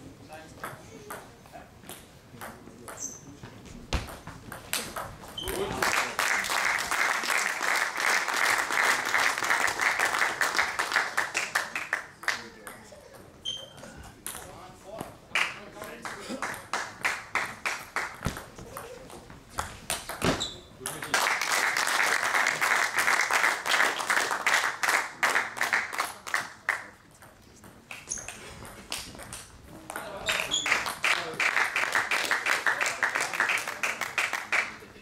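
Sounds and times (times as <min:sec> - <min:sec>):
background noise: 0:00.0 - 0:35.0.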